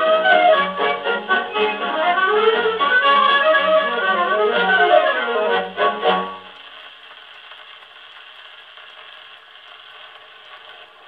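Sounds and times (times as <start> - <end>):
record surface hiss: 0.0 - 11.0
faint record clicks: 6.2 - 11.0.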